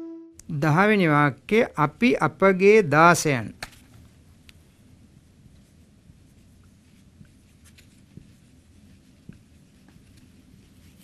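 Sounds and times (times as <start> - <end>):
marker writing on whiteboard: 6.6 - 11.0.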